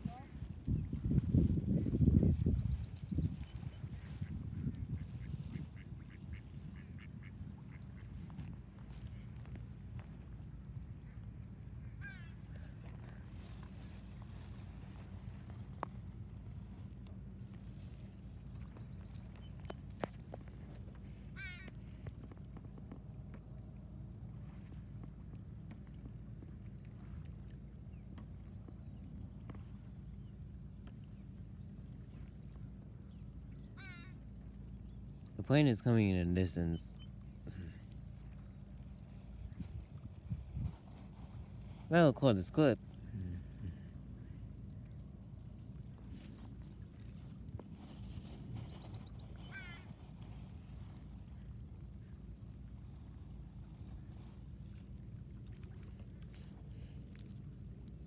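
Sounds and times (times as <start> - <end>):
wind rumbling on microphone: 0.0 - 35.9, 37.0 - 41.9, 42.7 - 58.0
duck quacking: 5.5 - 8.1.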